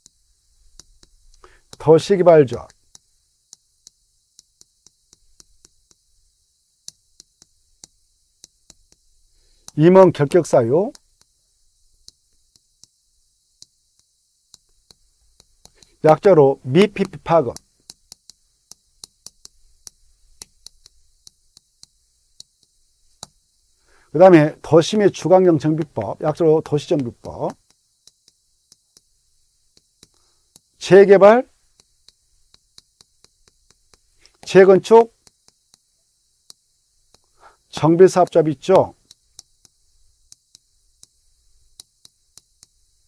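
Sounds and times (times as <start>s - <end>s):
chalk tapping on blackboard: 0.0s - 43.0s.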